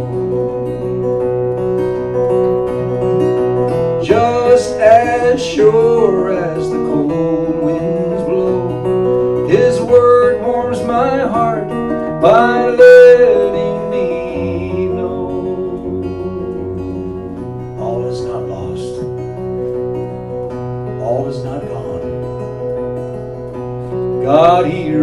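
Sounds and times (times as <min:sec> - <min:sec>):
acoustic guitar playing: 0:00.0 - 0:25.0
man singing: 0:04.0 - 0:19.1, 0:20.9 - 0:22.4, 0:24.1 - 0:25.0.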